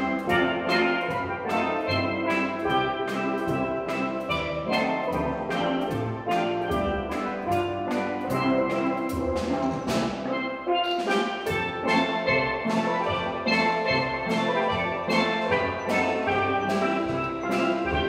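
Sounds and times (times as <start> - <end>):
steel drum band playing: 0.0 - 18.0.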